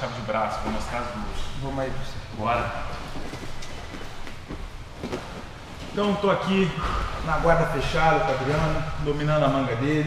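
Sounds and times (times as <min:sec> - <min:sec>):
rustling on training mat: 0:00.5 - 0:06.5.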